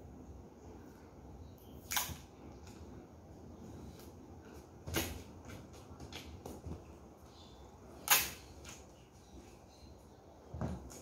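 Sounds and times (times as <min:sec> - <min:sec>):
tape ripping: 0:08.0 - 0:08.8
packing tape snapping: 0:08.0 - 0:08.9.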